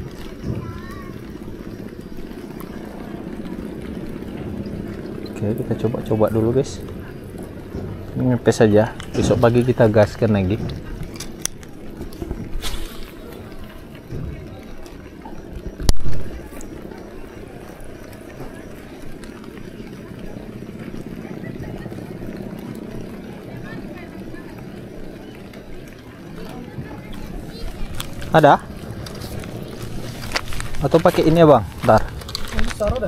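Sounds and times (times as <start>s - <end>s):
faint background voices: 0.0s - 33.0s
outdoor ambience: 0.0s - 33.0s.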